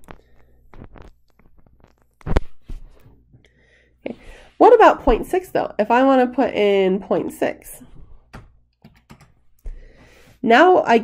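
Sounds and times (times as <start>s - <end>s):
computer keyboard keystrokes: 8.3s - 9.4s.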